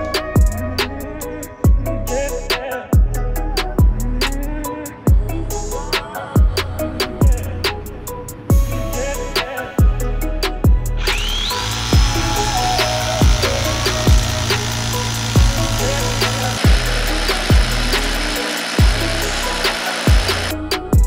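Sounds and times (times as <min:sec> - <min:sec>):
background music with steady beat: 0:00.0 - 0:21.0
hammer drill boring into stone: 0:11.0 - 0:20.6.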